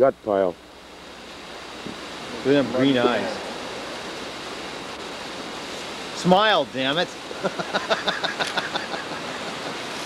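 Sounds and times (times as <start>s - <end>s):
outdoor rushing hiss: 0.0s - 10.0s.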